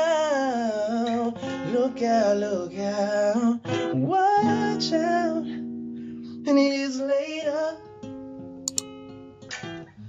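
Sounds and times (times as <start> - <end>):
acoustic guitar: 0.0 - 10.0
short sharp clicks: 8.7 - 8.9.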